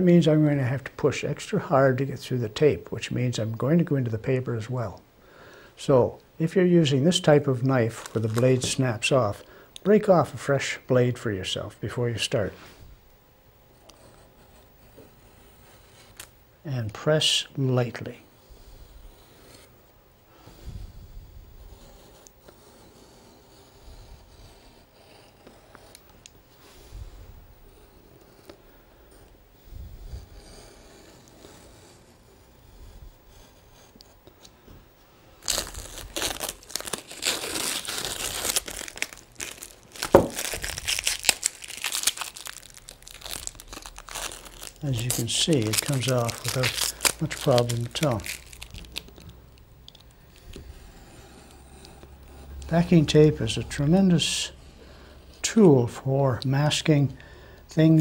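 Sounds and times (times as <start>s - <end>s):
packing tape crackling: 7.6s - 8.8s, 35.4s - 50.7s
tape ripping: 35.4s - 49.3s.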